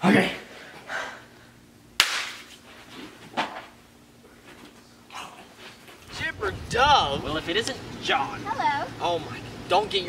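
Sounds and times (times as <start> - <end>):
sharp smack: 2.0 - 2.5.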